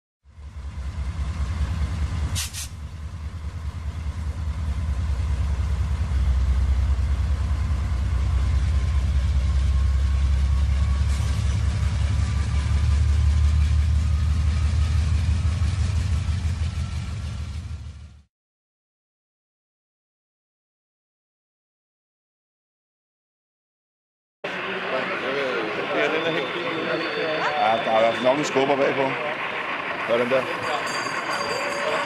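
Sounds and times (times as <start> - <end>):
model train rumbling on rails: 0.3 - 18.3, 24.5 - 32.0
short high hiss: 2.4 - 2.8.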